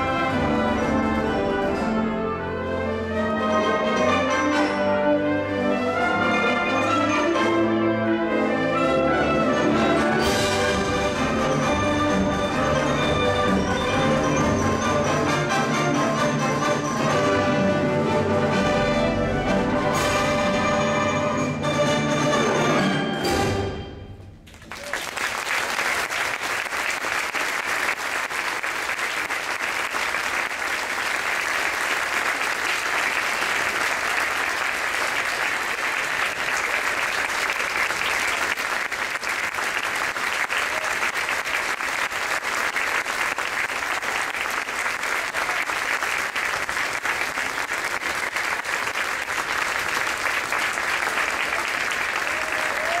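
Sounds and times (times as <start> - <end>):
concert band music: 0.0 - 24.5
audience applauding: 24.5 - 53.0.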